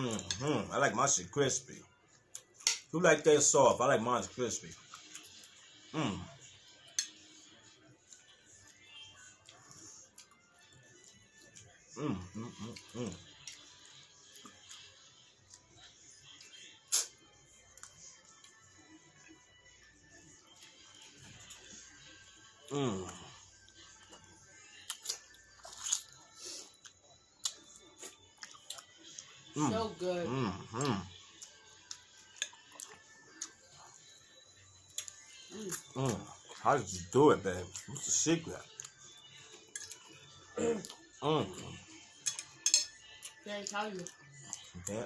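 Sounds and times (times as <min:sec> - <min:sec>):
faint music: 0:00.0 - 0:45.0
cutlery on a plate: 0:02.6 - 0:02.9, 0:06.9 - 0:07.2, 0:42.2 - 0:43.1
chewing and mouth clicks: 0:04.7 - 0:05.6, 0:08.0 - 0:18.6, 0:22.6 - 0:29.4, 0:30.5 - 0:34.0, 0:34.9 - 0:36.6, 0:38.6 - 0:41.1, 0:42.2 - 0:45.0.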